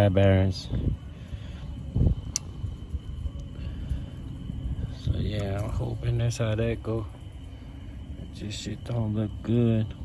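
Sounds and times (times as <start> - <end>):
low handling rumble: 0.0 - 10.0.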